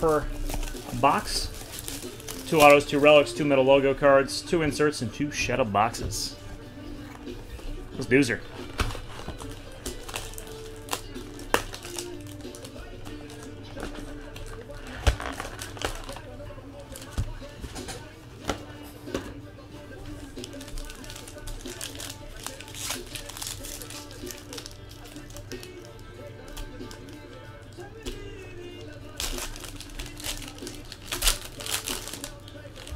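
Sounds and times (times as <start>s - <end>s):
foil packs crinkling and tearing: 0.0s - 4.1s, 8.0s - 17.6s, 20.1s - 32.9s
television music: 0.0s - 32.9s
television speech: 12.2s - 29.2s.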